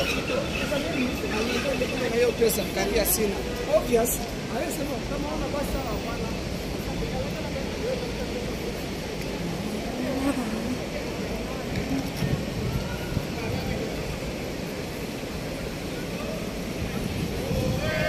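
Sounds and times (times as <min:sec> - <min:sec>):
traffic hum: 0:00.0 - 0:18.0.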